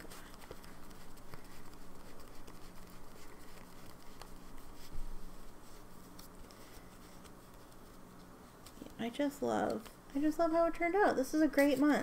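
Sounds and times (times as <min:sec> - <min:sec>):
cards rustling and flicking: 0:00.0 - 0:10.0.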